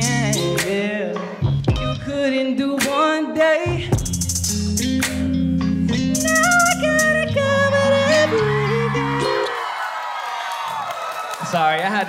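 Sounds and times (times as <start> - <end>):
bass line stepping down: 0.0 - 2.3, 3.7 - 9.4
r and b backing track: 0.0 - 9.8
crowd noise: 8.2 - 12.0.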